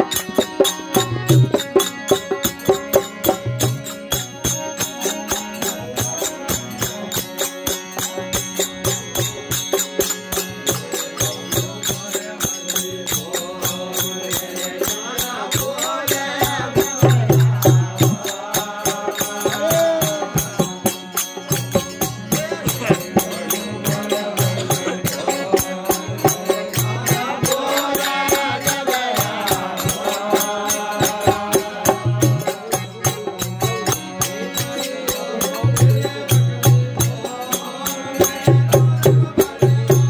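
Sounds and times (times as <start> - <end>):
jingling percussion beat: 0.0 - 40.0
men chanting: 10.4 - 40.0.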